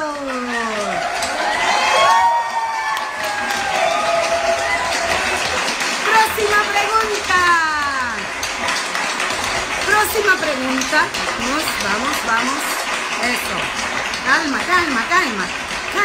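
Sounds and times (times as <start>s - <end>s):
crowd cheering and clapping: 0.0s - 16.0s
shouting voices and whoops: 0.4s - 5.7s.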